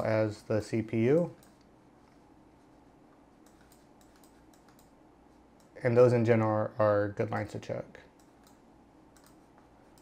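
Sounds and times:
person speaking: 0:00.0 - 0:01.6, 0:05.4 - 0:08.2
keyboard or mouse clicks: 0:03.4 - 0:04.9, 0:08.2 - 0:10.0.

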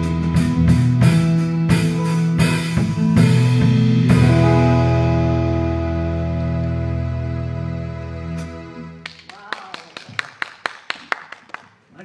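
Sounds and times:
sparse clapping: 0:09.0 - 0:11.8.

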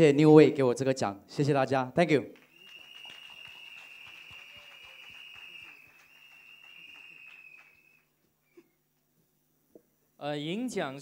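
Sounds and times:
audience hand claps: 0:02.3 - 0:08.1.

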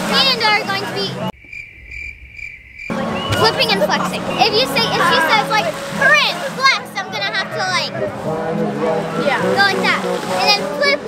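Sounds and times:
crickets chirping: 0:01.3 - 0:04.8.

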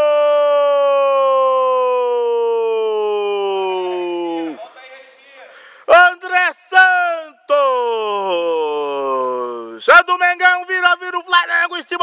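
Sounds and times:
man's drawn-out goal cry: 0:00.0 - 0:04.6.

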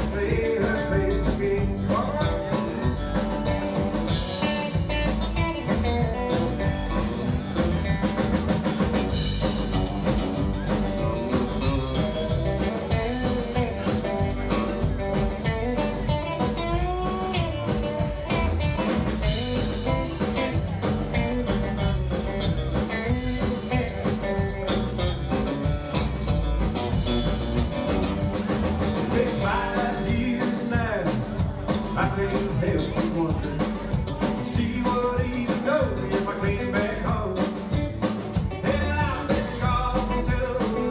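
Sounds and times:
country-rock band playing: 0:00.0 - 0:40.9
electric guitar lead with bent notes: 0:00.0 - 0:40.9.

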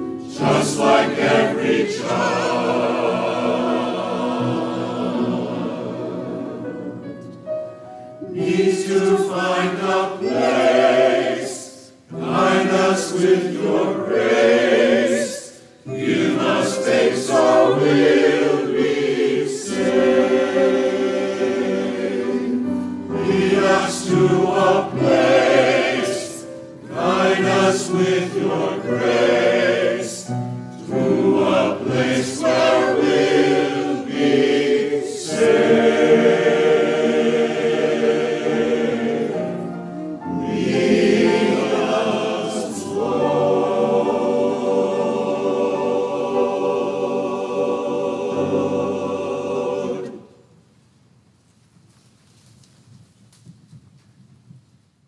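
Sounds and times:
choir singing: 0:00.0 - 0:07.3, 0:08.1 - 0:50.6.

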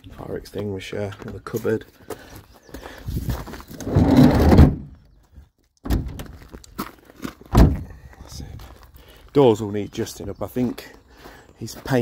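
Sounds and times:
sharp thunk: 0:07.6 - 0:07.8.

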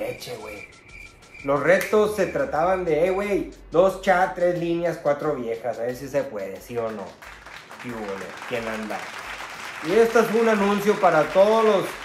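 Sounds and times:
voices: 0:00.0 - 0:00.7
applause: 0:06.8 - 0:12.0.

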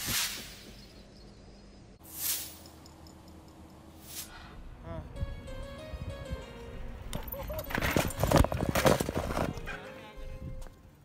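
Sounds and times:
camera clattering and rustling: 0:07.6 - 0:09.7.

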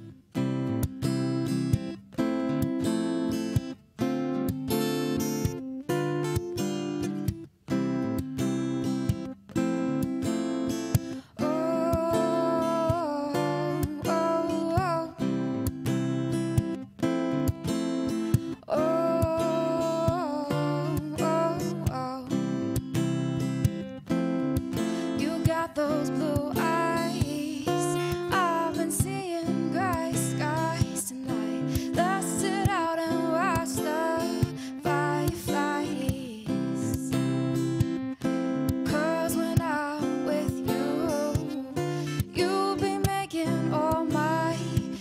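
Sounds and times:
acoustic guitar strumming: 0:00.0 - 0:45.0
woman singing: 0:09.8 - 0:16.8, 0:17.4 - 0:45.0.

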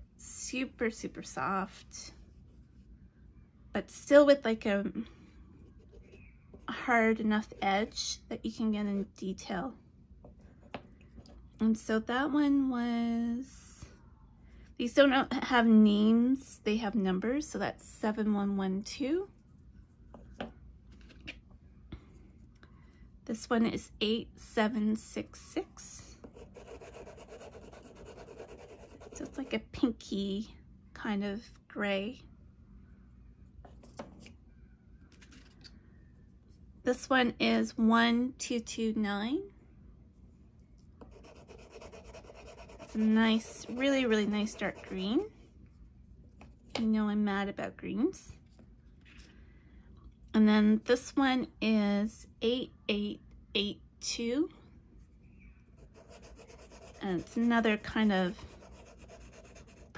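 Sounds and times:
pastel stick rubbing on paper: 0:26.3 - 0:29.5, 0:41.1 - 0:45.2, 0:55.8 - 0:59.9.

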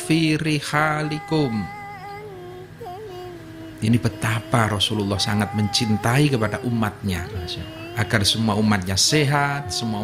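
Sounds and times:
man speaking: 0:00.0 - 0:01.9, 0:03.8 - 0:10.0.

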